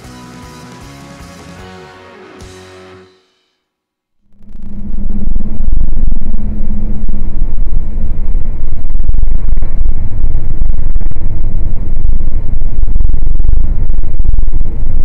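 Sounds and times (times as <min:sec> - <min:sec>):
low hum: 0:04.2 - 0:15.0.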